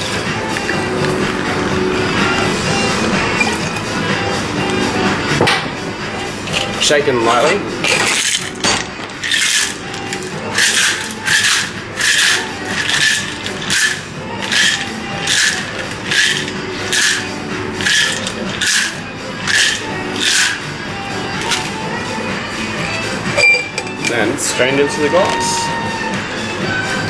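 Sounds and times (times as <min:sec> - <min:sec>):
ice rattling in cocktail shaker: 0:07.8 - 0:20.6.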